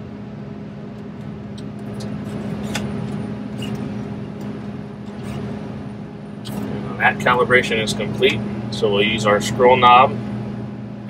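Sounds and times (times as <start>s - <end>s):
combine engine humming: 0.0s - 11.0s.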